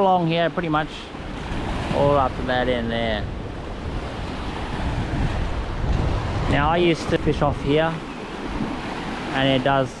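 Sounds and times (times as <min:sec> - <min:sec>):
wind buffeting microphone: 0:00.7 - 0:09.3.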